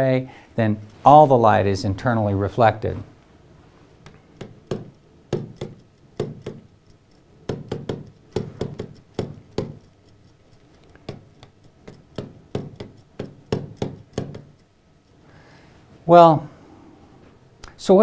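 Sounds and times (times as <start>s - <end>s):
stylus tapping on touchscreen glass: 4.1s - 9.9s, 10.9s - 14.6s.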